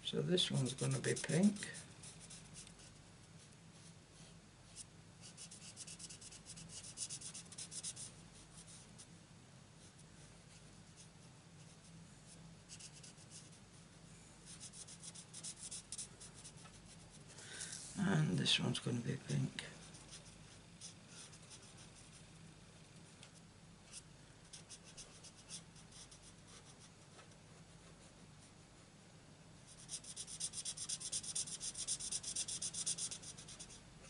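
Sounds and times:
marker tip scratching on card: 0:29.7 - 0:33.8.

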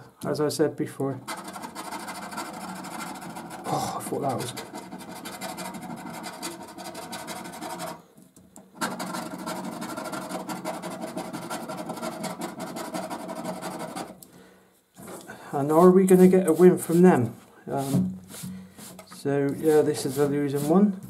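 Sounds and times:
coin scraping scratchcard: 0:01.2 - 0:08.0, 0:08.8 - 0:14.2.

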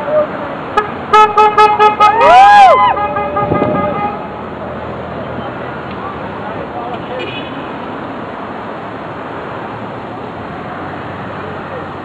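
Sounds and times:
people cheering with whoops: 0:02.1 - 0:03.2
car horn short beeps: 0:03.0 - 0:04.2.

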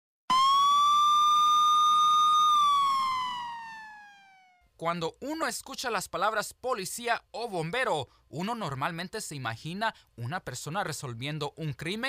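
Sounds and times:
police car siren wail: 0:00.3 - 0:04.6.

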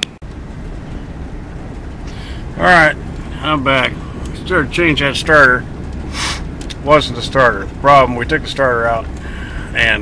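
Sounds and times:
vehicle rumble from inside cab: 0:00.0 - 0:10.0.

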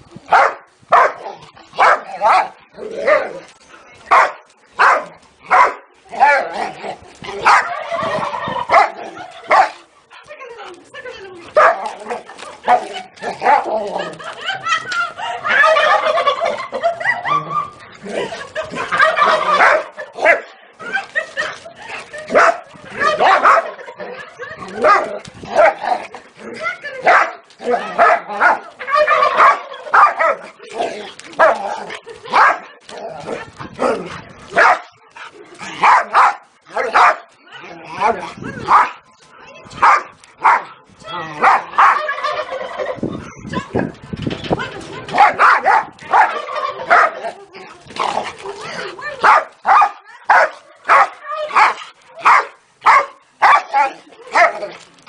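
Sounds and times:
dog barking: 0:00.3 - 0:01.2, 0:01.8 - 0:03.2, 0:04.1 - 0:05.8, 0:11.6 - 0:11.9, 0:22.4 - 0:22.6, 0:23.2 - 0:23.7, 0:32.3 - 0:32.6, 0:34.6 - 0:34.9, 0:35.8 - 0:37.3, 0:39.8 - 0:40.7, 0:45.2 - 0:47.2, 0:49.2 - 0:53.8.

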